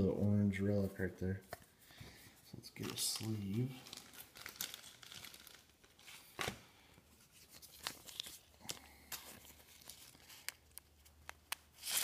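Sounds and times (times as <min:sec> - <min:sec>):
plastic card sleeve crinkling: 0:02.7 - 0:12.0.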